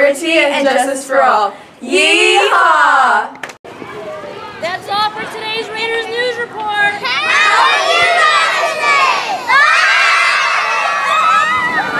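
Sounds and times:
children shouting and cheering: 6.8 - 11.9.

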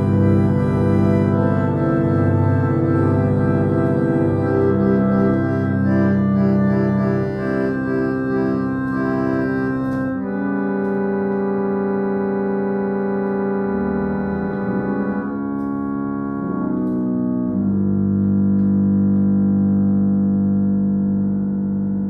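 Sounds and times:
harmonium playing sustained chords: 0.0 - 22.0.

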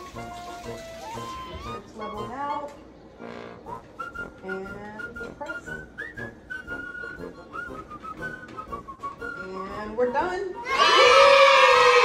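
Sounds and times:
whistled melody: 0.0 - 2.7, 3.7 - 10.8.

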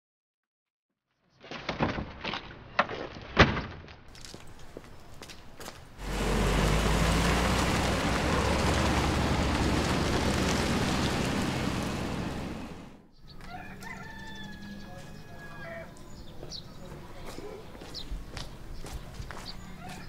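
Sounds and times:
car pulling away: 6.0 - 13.1
rooster crowing: 13.4 - 15.9.

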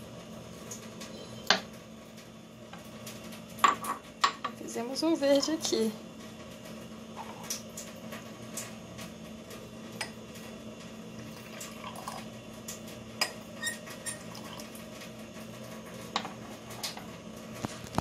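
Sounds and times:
tea pouring between glasses: 11.3 - 12.2, 14.1 - 14.7.

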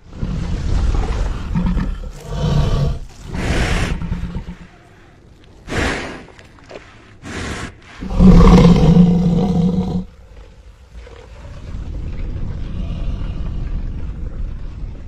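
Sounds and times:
low growling rumble: 0.0 - 5.2, 8.0 - 15.0.

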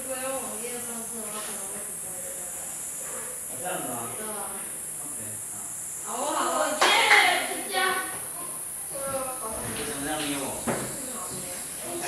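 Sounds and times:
high-pitched hiss: 0.0 - 12.0.

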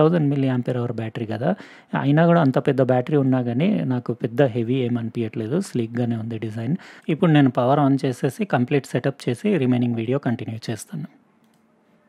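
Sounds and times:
man speaking: 0.0 - 11.2.

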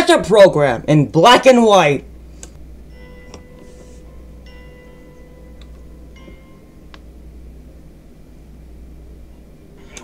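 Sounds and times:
steady low hum: 0.0 - 10.0
faint chime-like notes: 2.7 - 6.9.

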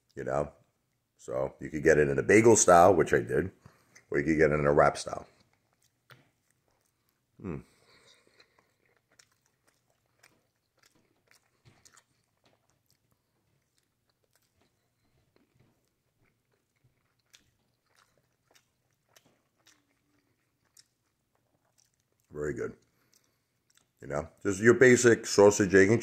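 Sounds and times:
person chewing: 3.5 - 4.1, 4.7 - 25.4
person humming: 7.4 - 7.6.

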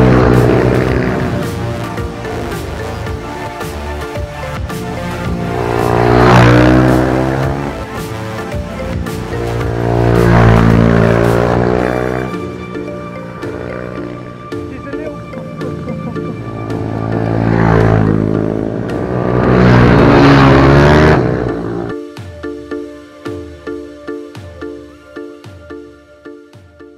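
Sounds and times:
minibike engine passing by: 0.0 - 14.5, 15.4 - 21.9
background music: 0.0 - 26.9.

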